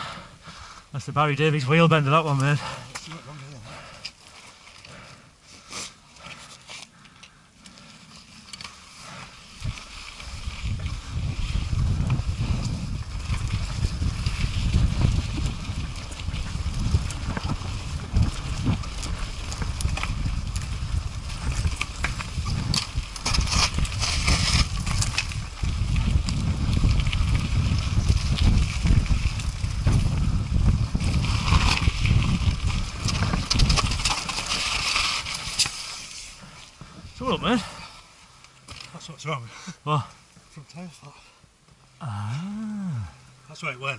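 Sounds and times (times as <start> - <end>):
wind buffeting microphone: 9.4 - 35.6
bike clattering over stones: 9.6 - 37.1.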